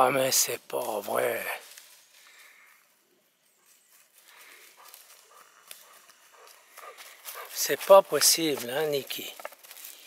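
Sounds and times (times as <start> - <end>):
dog paws on dry leaves: 0.0 - 2.7, 3.4 - 10.0.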